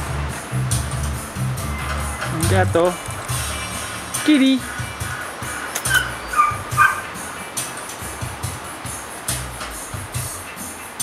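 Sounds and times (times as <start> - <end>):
background music: 0.0 - 11.0
pet animal high-pitched calls: 4.6 - 7.7.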